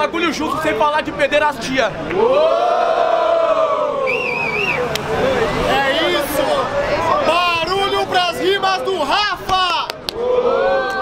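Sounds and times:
crowd cheering: 0:02.0 - 0:11.0
warbling whistle: 0:04.0 - 0:05.0.

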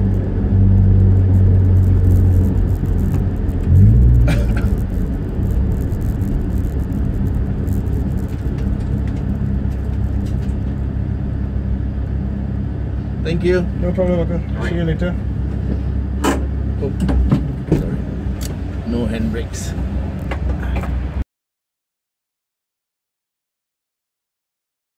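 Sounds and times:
car engine heard from cabin: 0:00.0 - 0:21.2.

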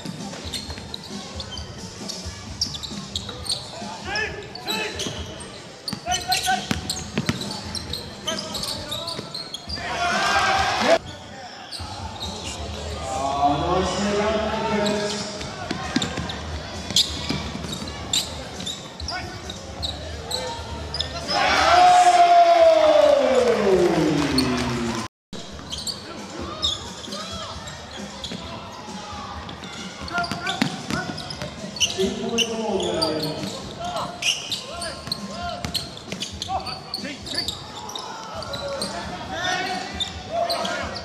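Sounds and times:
voices of players and spectators: 0:00.0 - 0:41.0
loud shout: 0:09.8 - 0:11.0, 0:21.2 - 0:25.0.

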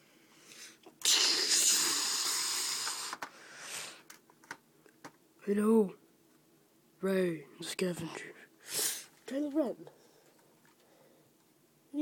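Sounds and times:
breathy hiss of air: 0:00.0 - 0:04.1, 0:08.6 - 0:09.2.

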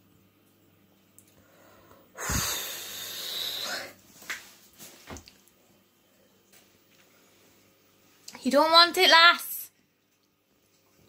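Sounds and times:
woman breathing heavily through mouth: 0:01.4 - 0:04.0.

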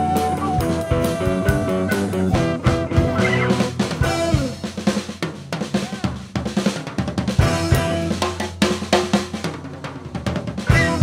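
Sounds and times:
band instruments: 0:00.0 - 0:11.0
drum kit playing: 0:00.0 - 0:11.0.

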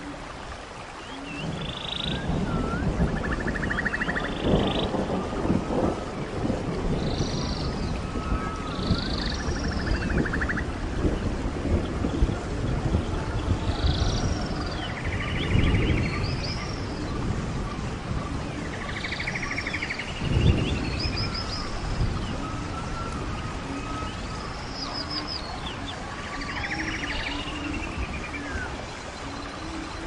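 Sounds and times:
birds calling: 0:00.0 - 0:30.0
rain: 0:00.0 - 0:30.0
thunder rumble: 0:01.4 - 0:30.0.

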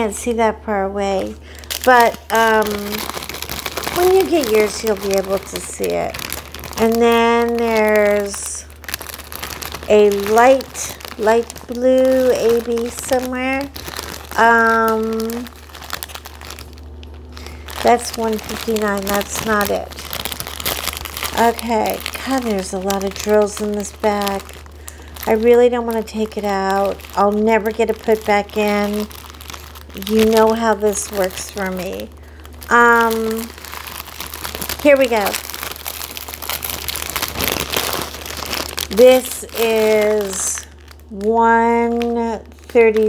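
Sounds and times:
plastic bags crinkling: 0:00.9 - 0:43.0.

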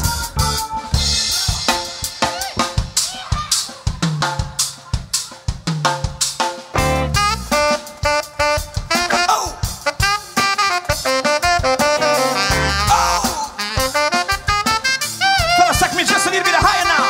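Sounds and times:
funk drum kit break: 0:00.0 - 0:17.0
horn notes: 0:06.8 - 0:17.0.

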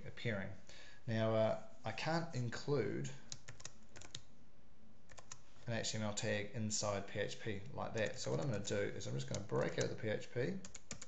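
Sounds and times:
keyboard typing clicks: 0:03.3 - 0:04.2, 0:05.1 - 0:05.4, 0:08.0 - 0:10.0, 0:10.6 - 0:11.0.

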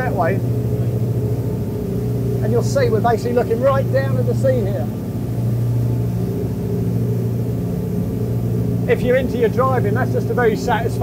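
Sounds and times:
boat diesel engines droning: 0:00.0 - 0:11.0.

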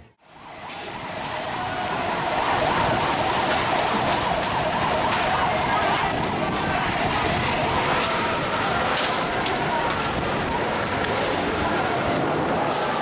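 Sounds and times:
dense street noise: 0:00.0 - 0:13.0
vehicle siren wailing: 0:00.1 - 0:13.0.

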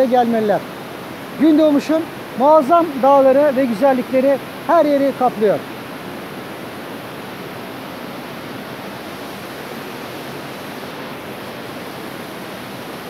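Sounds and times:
waterfall rushing: 0:00.0 - 0:13.0.

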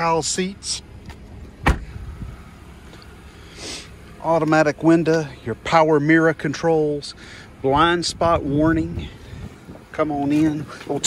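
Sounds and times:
car engine idling: 0:00.0 - 0:11.0
car door shutting: 0:01.1 - 0:02.3
person breathing: 0:07.2 - 0:07.6.

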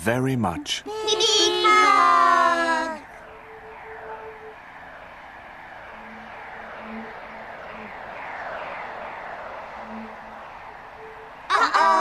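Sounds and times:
falling whooshing sweeps: 0:00.9 - 0:12.0.

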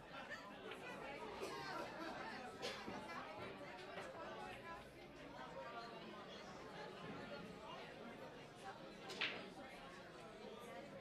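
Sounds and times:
background chatter in a hall: 0:00.0 - 0:11.0.

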